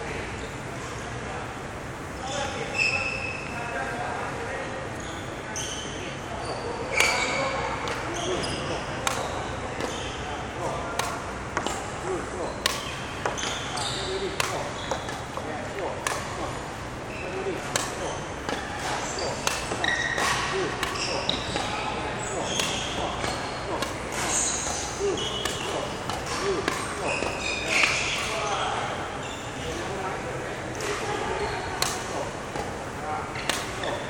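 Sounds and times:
shoes squeaking on wooden floor: 0:06.4 - 0:10.2, 0:12.4 - 0:15.6, 0:17.1 - 0:28.5, 0:33.4 - 0:34.0
racket striking shuttlecock: 0:09.0 - 0:10.2, 0:10.9 - 0:11.9, 0:12.6 - 0:16.5, 0:17.6 - 0:28.3, 0:31.8 - 0:32.8, 0:33.4 - 0:34.0.

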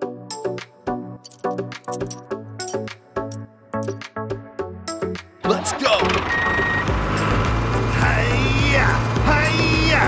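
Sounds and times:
music: 0:00.0 - 0:10.0
vehicle engine: 0:06.1 - 0:09.6.

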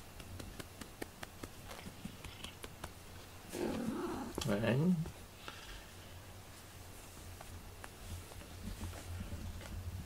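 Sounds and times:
cat growling: 0:03.5 - 0:04.4.

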